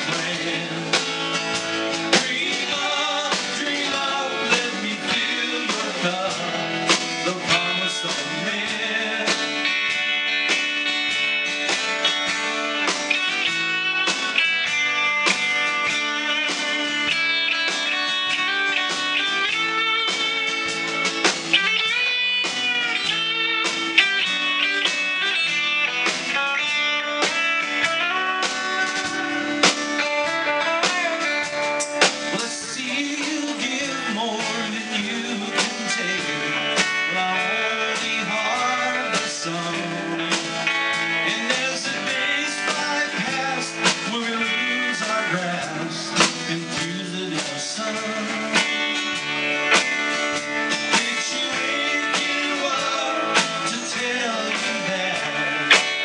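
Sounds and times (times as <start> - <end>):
live rock band playing: 0.0 - 56.0.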